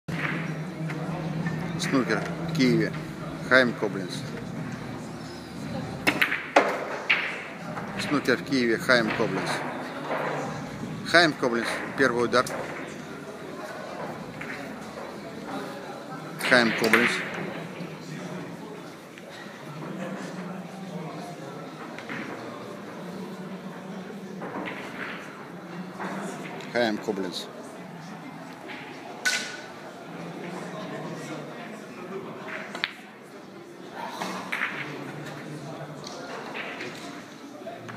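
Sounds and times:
snooker balls clicking: 0:00.1 - 0:15.8, 0:16.4 - 0:17.9, 0:21.6 - 0:27.3, 0:32.4 - 0:33.2, 0:34.4 - 0:37.9
large hall background: 0:00.1 - 0:37.9
cue striking ball: 0:06.0 - 0:07.9.

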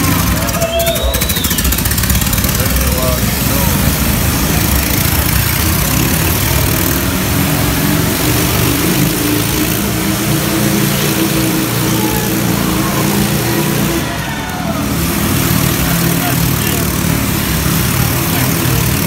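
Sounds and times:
motorcycle engines running loudly: 0:00.0 - 0:19.0.

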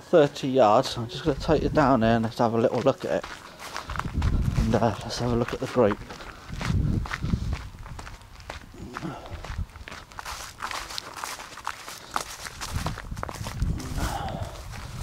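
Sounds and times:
footsteps on dirt and grass: 0:00.1 - 0:15.0
brushing and rustling: 0:03.6 - 0:05.9, 0:10.2 - 0:14.2.

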